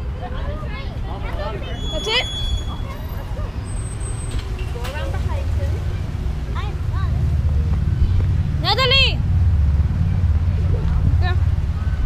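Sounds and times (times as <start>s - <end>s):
distant voices: 0.0s - 12.0s
rising whistle-like call: 1.7s - 3.0s
low outdoor rumble: 2.5s - 12.0s.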